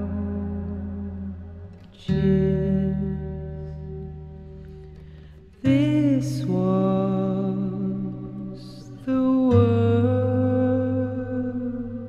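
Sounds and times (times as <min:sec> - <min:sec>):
acoustic guitar chords strummed: 0:00.0 - 0:12.0.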